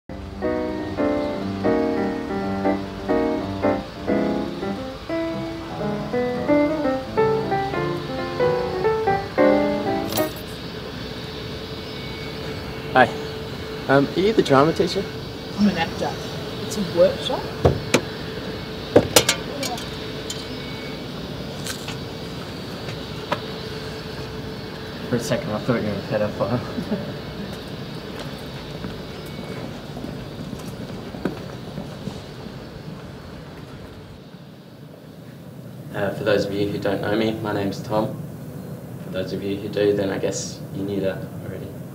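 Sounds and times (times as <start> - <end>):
music: 0.1 - 10.4
faint constant tone: 0.1 - 41.9
outdoor background noise: 0.1 - 41.9
footsteps on pavement: 21.5 - 24.9, 27.4 - 34.2.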